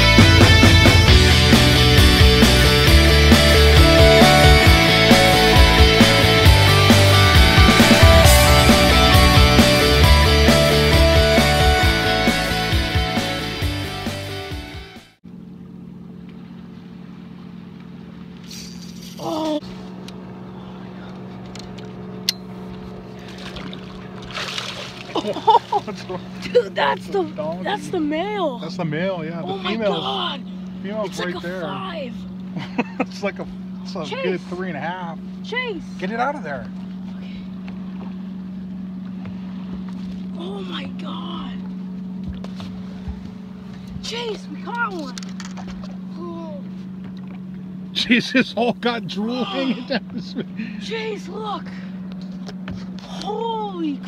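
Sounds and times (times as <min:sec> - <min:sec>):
rock music: 0:00.0 - 0:15.2
boat motor humming: 0:00.0 - 0:54.0.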